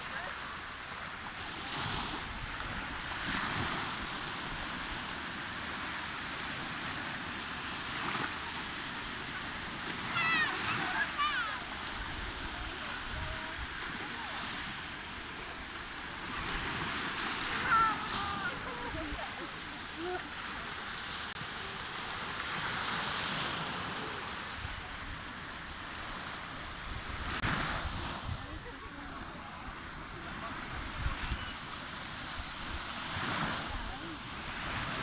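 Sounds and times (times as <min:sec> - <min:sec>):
waves breaking on sandy shore: 0:00.0 - 0:35.0.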